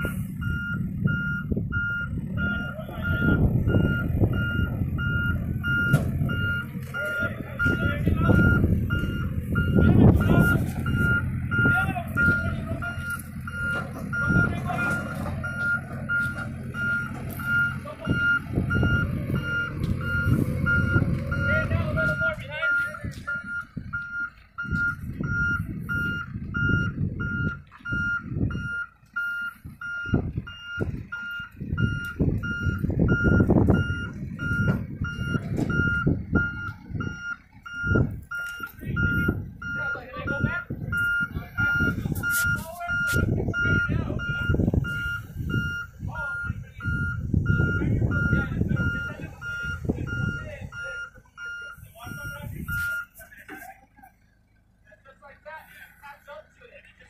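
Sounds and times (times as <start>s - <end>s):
reversing alarm beeping: 0.0s - 53.2s
low engine rumble: 0.0s - 57.0s.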